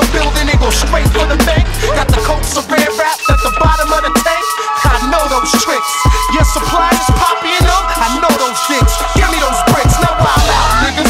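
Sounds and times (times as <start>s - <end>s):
rapping over a beat: 0.0s - 11.0s
held synth notes: 3.2s - 11.0s.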